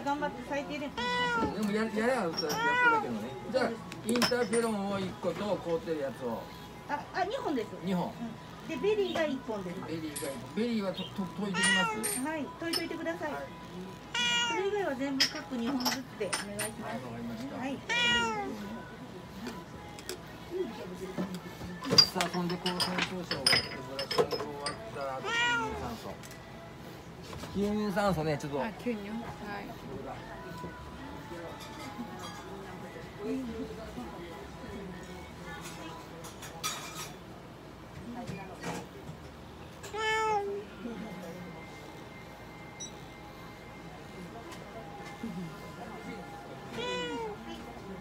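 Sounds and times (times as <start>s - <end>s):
cat meowing: 0.9s - 1.8s, 2.4s - 3.4s, 11.5s - 12.3s, 14.0s - 14.9s, 17.8s - 18.7s, 25.2s - 26.0s, 39.8s - 40.6s, 46.7s - 47.7s.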